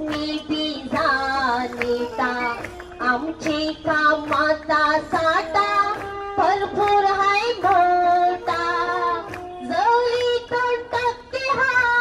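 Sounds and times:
woman singing over loudspeakers: 0.0s - 12.0s.

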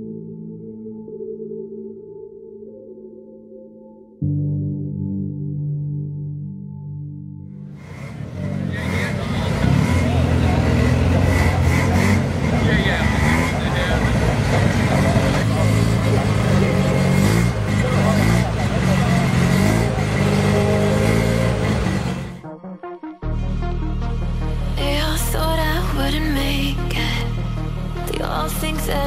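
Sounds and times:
car engine running: 7.8s - 22.4s
people talking: 8.6s - 22.4s, 28.1s - 29.0s.

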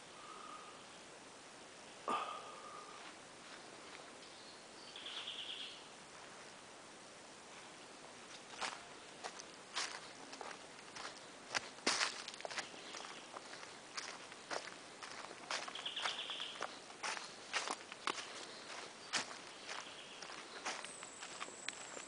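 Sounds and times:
footsteps crunching dry leaves: 8.3s - 22.0s.

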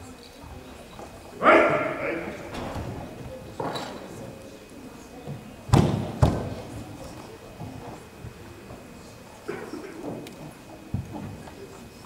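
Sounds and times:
person shouting sharply: 1.4s - 2.4s.

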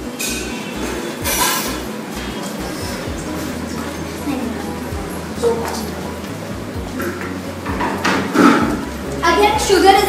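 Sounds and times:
kitchen things clinking and rustling: 0.0s - 10.0s
steady low hum: 0.0s - 10.0s.

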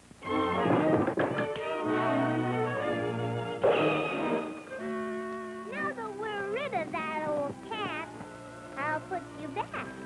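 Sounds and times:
orchestral music held notes: 0.2s - 10.0s.

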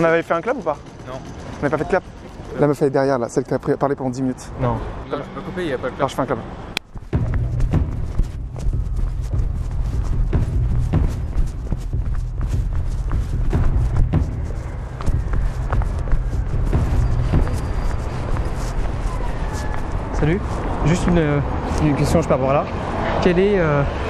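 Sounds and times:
microphone handling noise: 6.8s - 20.7s
footsteps on stone pavement: 6.8s - 22.0s
wind rumble on microphone: 6.9s - 21.7s.

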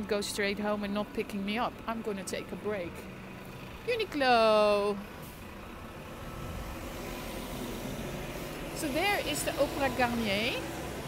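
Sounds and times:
road traffic hum: 0.0s - 11.0s.

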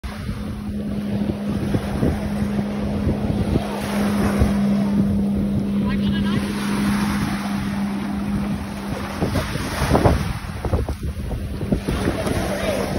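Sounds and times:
motorboat engine droning: 0.0s - 12.9s
small waves washing onto sand: 0.0s - 12.9s
wind buffeting microphone: 0.0s - 12.9s.

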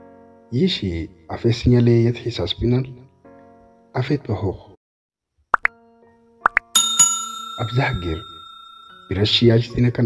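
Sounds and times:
bright bell ding: 6.8s - 9.7s.

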